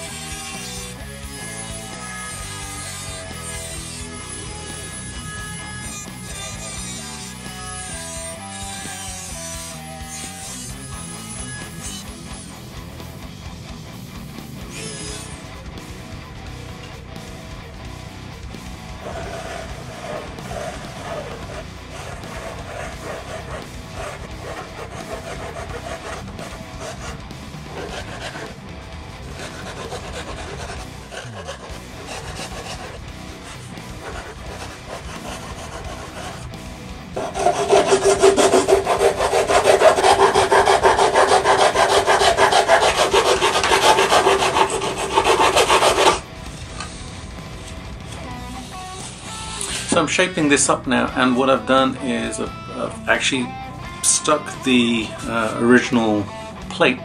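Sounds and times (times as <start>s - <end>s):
hacksaw cutting: 0.0s - 12.5s, 14.7s - 15.4s, 19.0s - 28.6s, 29.2s - 36.5s, 37.2s - 46.2s
loud steady grinding: 17.5s - 48.1s.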